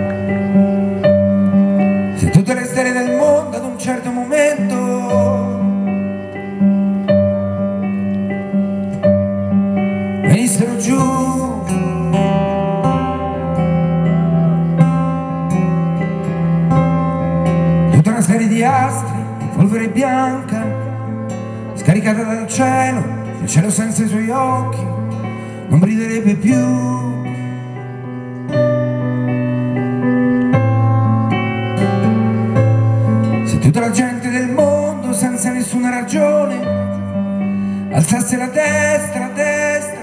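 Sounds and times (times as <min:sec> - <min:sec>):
acoustic guitar strumming: 0:00.0 - 0:40.0
sustained keyboard accompaniment: 0:00.0 - 0:40.0
man singing into microphone: 0:02.2 - 0:06.0, 0:10.2 - 0:13.2, 0:17.9 - 0:27.8, 0:33.4 - 0:40.0.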